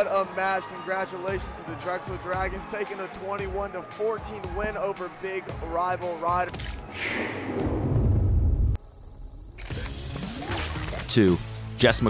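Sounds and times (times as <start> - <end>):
dense arena noise: 0.0 - 7.8.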